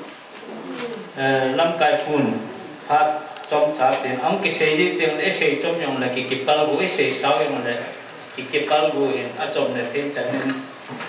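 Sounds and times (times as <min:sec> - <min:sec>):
man speaking over pa system: 0:01.2 - 0:10.7.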